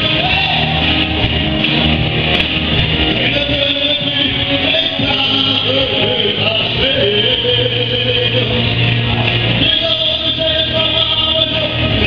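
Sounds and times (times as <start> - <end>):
live rock music: 0.0 - 12.0.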